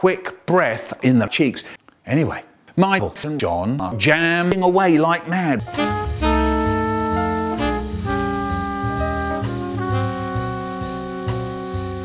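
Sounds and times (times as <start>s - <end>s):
drum kit: 5.6s - 12.0s
saxophone and brass chords: 5.6s - 12.0s.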